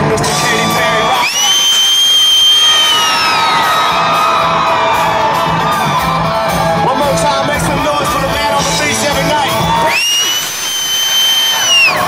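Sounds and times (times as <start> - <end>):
country-rock band playing live: 0.0 - 12.0
crowd cheering and whooping: 0.5 - 7.5, 9.3 - 12.0
piercing high whistle: 1.0 - 3.9, 9.8 - 12.0.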